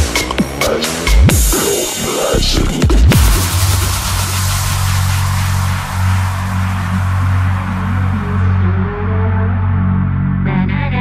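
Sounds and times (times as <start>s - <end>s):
deep bass drone: 0.0s - 11.0s.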